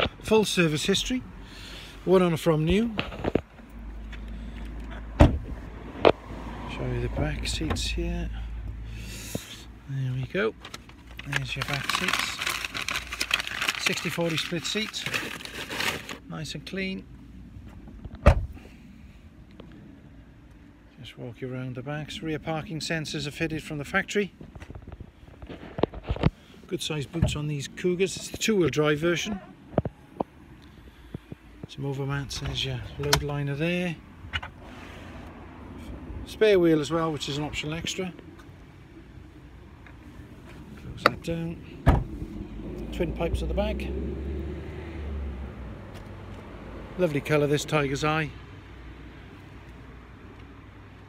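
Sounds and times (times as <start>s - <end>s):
car door shutting: 5.1s - 6.2s, 18.1s - 18.6s, 41.8s - 42.2s.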